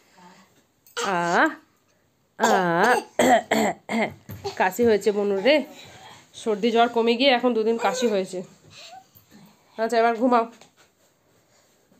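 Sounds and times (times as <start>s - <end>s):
person coughing: 2.4s - 4.6s.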